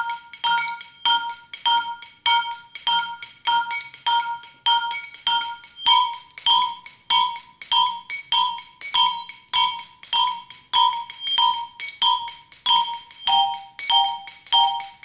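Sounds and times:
tuned percussion strikes: 0.0s - 15.0s.

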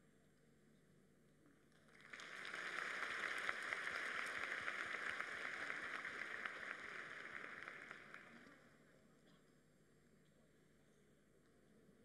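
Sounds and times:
audience applauding: 1.9s - 8.6s.

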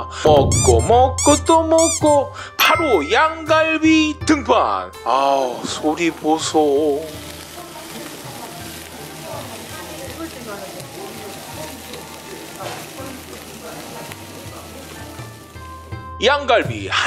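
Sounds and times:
quiet background music: 0.0s - 17.0s
meat sizzling on a grill: 5.0s - 17.0s.

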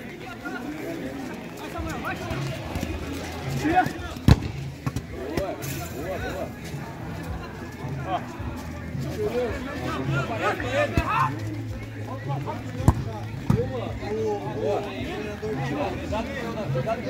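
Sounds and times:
players calling and shouting: 0.0s - 17.0s
ball being kicked thuds: 4.2s - 5.5s, 12.8s - 13.7s.

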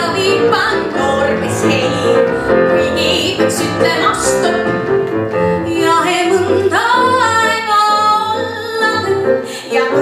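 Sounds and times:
digital piano accompaniment: 0.0s - 10.0s.

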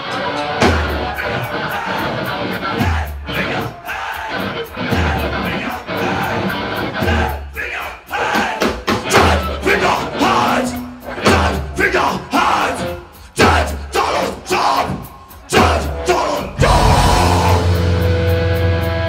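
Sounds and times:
crowd yelling: 0.0s - 19.0s
metal band playing live: 0.0s - 19.0s
shouted vocals: 0.8s - 18.1s.

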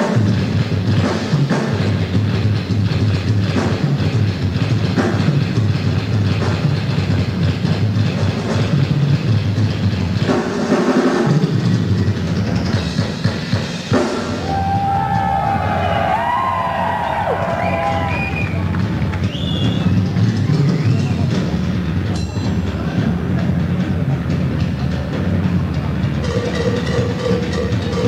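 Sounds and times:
bass and distorted instruments: 0.0s - 28.0s
fast metal drumming: 0.0s - 28.0s.

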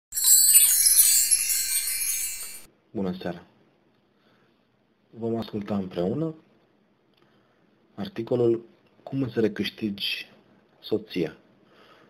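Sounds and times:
high chimes ringing: 0.0s - 2.7s.

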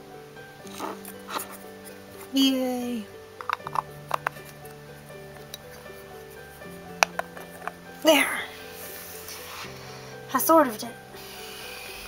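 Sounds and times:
soft background music: 0.0s - 12.0s
plastic capsule clicks: 3.4s - 6.0s, 6.8s - 7.8s.

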